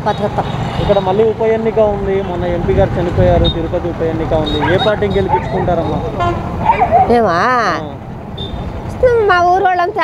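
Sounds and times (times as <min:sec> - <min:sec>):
road traffic noise: 0:00.0 - 0:10.0
woman talking: 0:07.0 - 0:07.9, 0:08.9 - 0:10.0.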